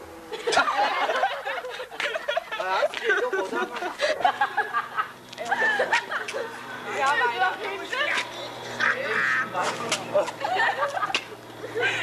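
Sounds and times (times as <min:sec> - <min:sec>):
steady low hum: 0:00.0 - 0:12.0
young people calling and chattering: 0:00.5 - 0:12.0.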